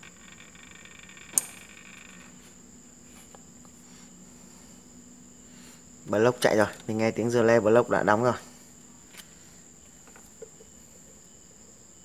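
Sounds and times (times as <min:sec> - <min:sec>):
faint high whine: 0:00.0 - 0:12.0.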